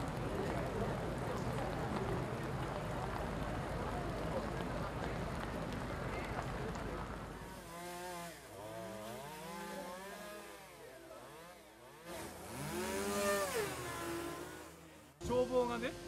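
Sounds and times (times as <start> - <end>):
small engine revving: 7.4 - 16.0.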